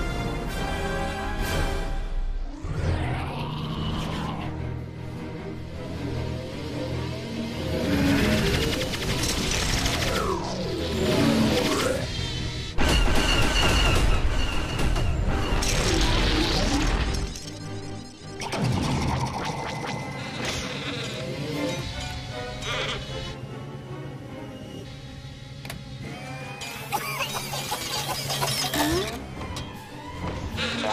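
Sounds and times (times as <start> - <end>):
film score music: 0.0 - 30.9.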